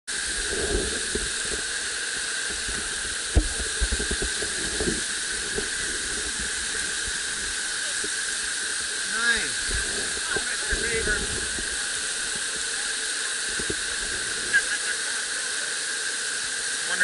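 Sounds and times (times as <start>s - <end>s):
whitewater rushing: 0.1s - 17.0s.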